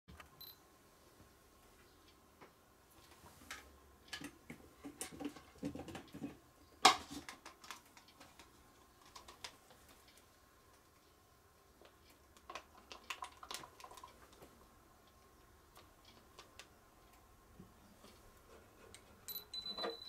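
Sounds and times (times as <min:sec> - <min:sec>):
small items clicking on workbench: 0:03.0 - 0:10.8, 0:11.8 - 0:14.5.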